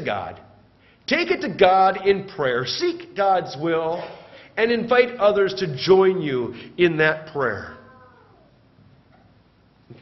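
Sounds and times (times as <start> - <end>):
amplified speech in a church: 0.0 - 8.0.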